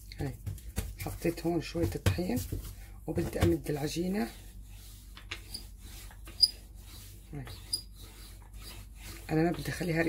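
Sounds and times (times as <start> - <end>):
rolling pin rolling over dough: 0.5 - 10.0
short high squeaks: 6.3 - 6.6, 7.5 - 8.0.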